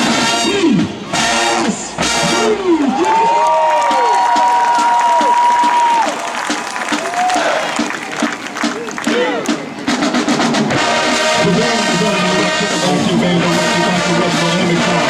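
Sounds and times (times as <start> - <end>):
marching band brass chords: 0.0 - 15.0
stadium crowd cheering and screaming: 0.6 - 12.4.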